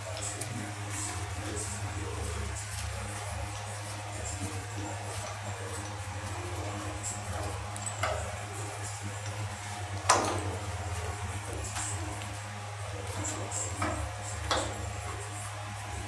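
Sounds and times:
steady low hum: 0.0s - 16.0s
metal clanks and knocks: 10.0s - 10.6s.

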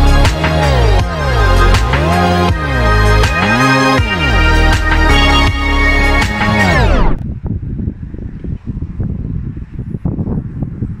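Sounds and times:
wind buffeting microphone: 6.3s - 11.0s.

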